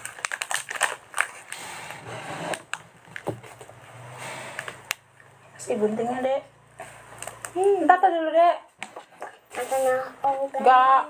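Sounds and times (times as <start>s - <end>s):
packaging crackling: 0.0s - 1.6s, 7.0s - 7.8s.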